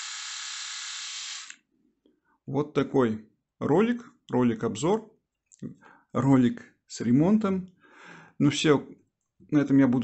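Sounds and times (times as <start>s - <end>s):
electric shaver buzzing: 0.0s - 1.6s.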